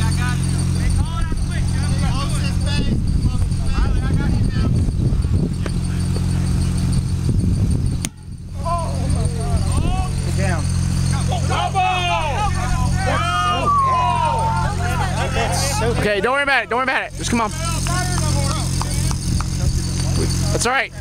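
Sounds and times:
people yelling and calling out: 0:00.0 - 0:06.9, 0:08.2 - 0:21.0
steady low hum: 0:00.0 - 0:21.0
long drawn-out shout: 0:11.1 - 0:16.0.

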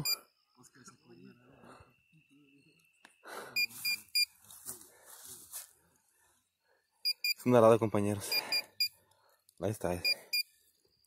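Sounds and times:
metal detector short beeps: 0:00.0 - 0:00.2, 0:03.6 - 0:04.4, 0:07.0 - 0:07.5, 0:10.0 - 0:10.5
metal detector high tone: 0:00.0 - 0:01.3, 0:03.5 - 0:04.4.

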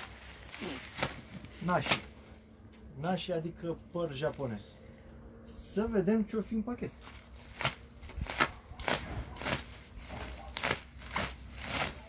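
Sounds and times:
plastic film crackling: 0:00.0 - 0:02.5, 0:07.0 - 0:12.0.

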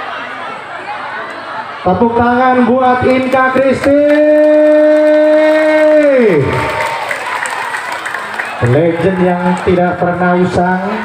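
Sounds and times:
crowd cheering and applause: 0:03.0 - 0:11.0.

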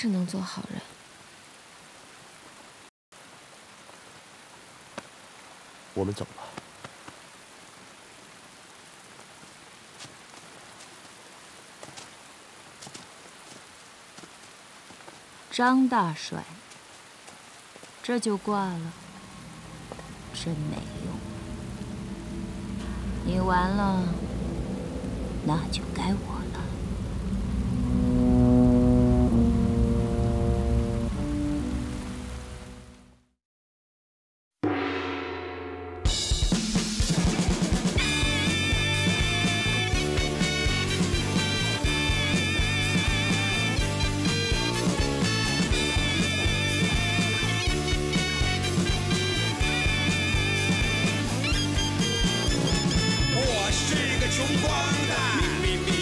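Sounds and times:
soft rain falling: 0:00.0 - 0:33.2, 0:36.3 - 0:56.0
steady low rumble: 0:18.9 - 0:32.4
held chords score: 0:19.0 - 0:33.1.

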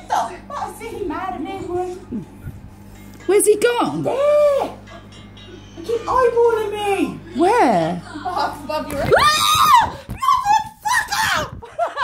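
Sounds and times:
women squealing: 0:04.0 - 0:04.8, 0:09.0 - 0:12.0
rhythmic laughter: 0:04.6 - 0:06.6, 0:11.5 - 0:12.0.

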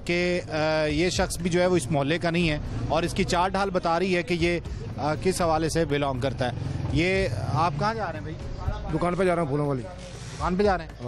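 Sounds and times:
men talking in a crowd: 0:00.0 - 0:11.0.

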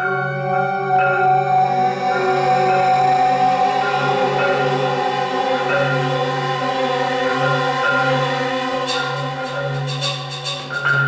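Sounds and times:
sustained electronic chord: 0:00.0 - 0:11.0.

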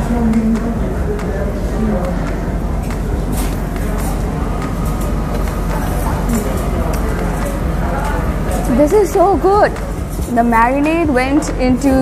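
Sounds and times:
diners chatting: 0:00.0 - 0:12.0.

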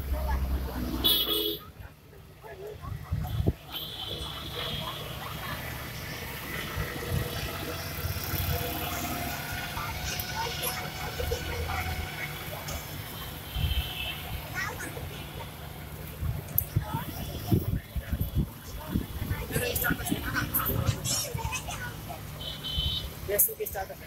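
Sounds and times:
people talking: 0:00.0 - 0:24.0
vehicles passing: 0:00.0 - 0:24.0.

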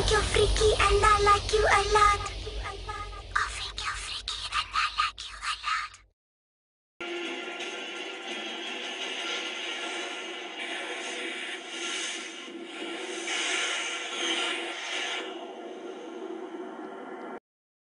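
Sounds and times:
hissy television soundtrack: 0:07.0 - 0:17.4.

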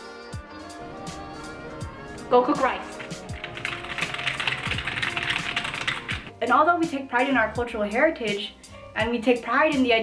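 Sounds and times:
background music: 0:00.0 - 0:10.0
rapid typing on keyboard: 0:02.2 - 0:06.3.

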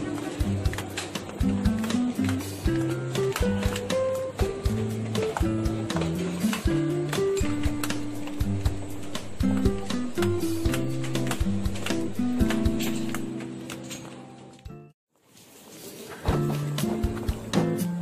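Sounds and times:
background music with steady beat: 0:00.0 - 0:15.0, 0:16.2 - 0:18.0.

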